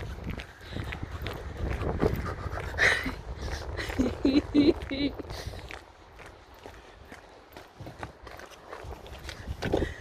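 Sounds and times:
footsteps on pavement: 0.0s - 10.0s
woman laughing: 2.6s - 5.5s.

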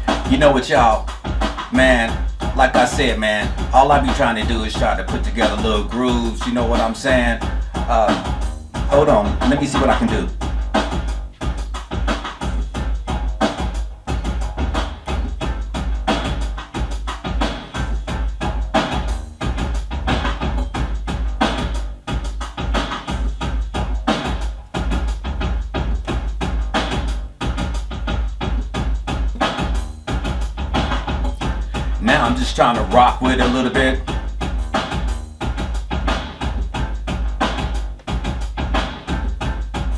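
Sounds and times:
keyboard parts: 0.0s - 34.2s
deep bass: 0.0s - 39.9s
drum machine beat: 0.0s - 39.9s.

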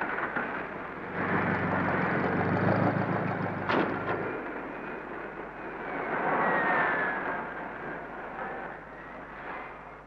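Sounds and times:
jet engine with falling whine: 0.0s - 10.0s.

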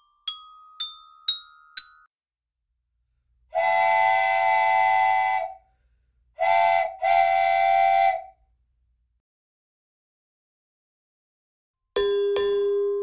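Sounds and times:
chorded train whistle blasts: 3.5s - 5.7s, 6.4s - 8.4s.

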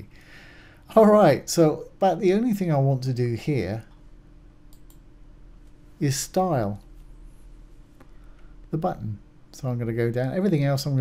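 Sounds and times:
low room hum: 0.0s - 11.0s
computer mouse click: 4.7s - 5.1s.

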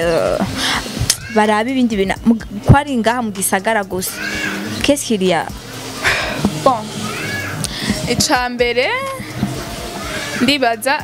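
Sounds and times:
woman speaking: 0.0s - 4.2s, 4.8s - 5.6s, 6.6s - 7.0s, 7.8s - 9.4s, 10.4s - 11.0s
background music: 0.0s - 11.0s.

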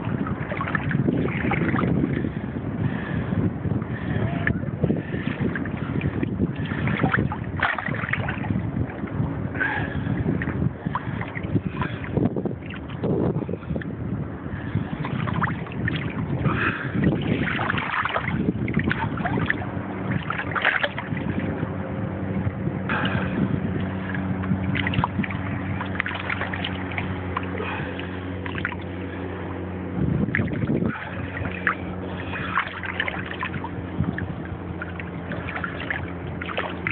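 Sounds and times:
small waves sloshing and splashing: 0.0s - 36.9s
steady low hum: 0.0s - 36.9s
wind on microphone: 0.0s - 36.9s.

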